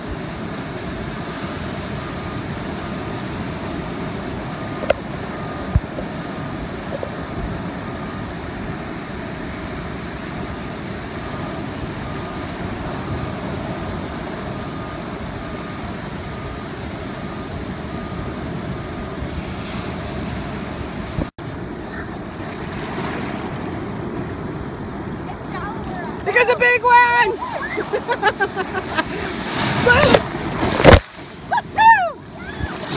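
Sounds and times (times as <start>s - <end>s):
ocean surf breaking: 0.0s - 32.9s.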